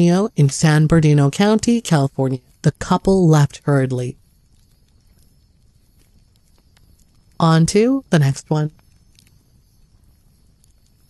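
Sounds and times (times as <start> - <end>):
narrator's voice: 0.0 - 4.2, 7.4 - 8.8
faint background ambience: 0.0 - 11.0.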